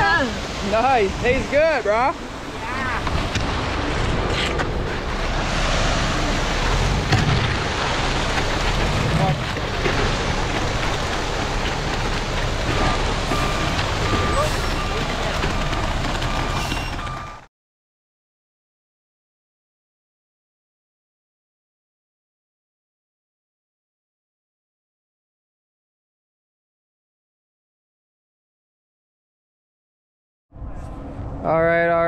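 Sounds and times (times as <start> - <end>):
wet concrete sliding down chute: 0.0 - 17.4
concrete mixer truck running: 0.0 - 17.5.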